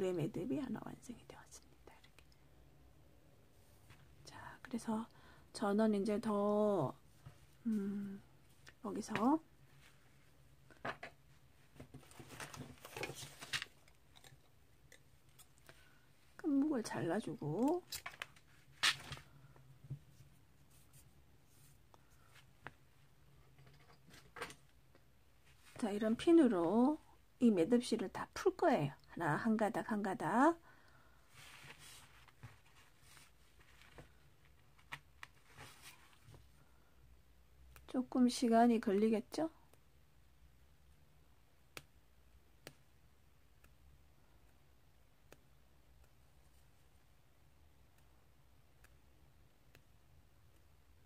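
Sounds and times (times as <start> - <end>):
soft rustling of cord: 6.9 - 26.4, 31.2 - 37.9, 42.6 - 50.7.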